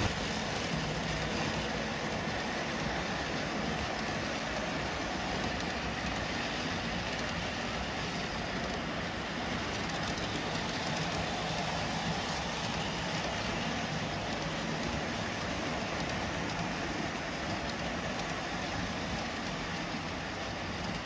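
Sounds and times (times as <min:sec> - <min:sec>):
model train wheels rumbling on rail: 0:00.0 - 0:21.0.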